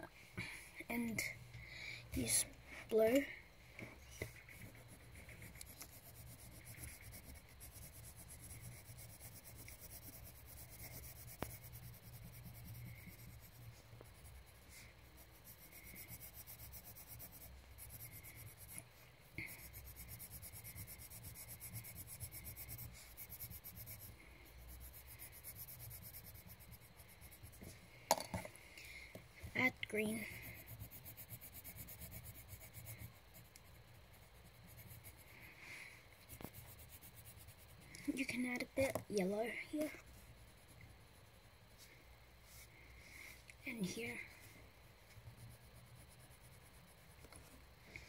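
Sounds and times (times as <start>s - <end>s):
low steady hum: 0.0s - 48.0s
colouring strokes scratching on paper: 4.0s - 27.8s, 29.5s - 42.8s, 45.1s - 48.0s.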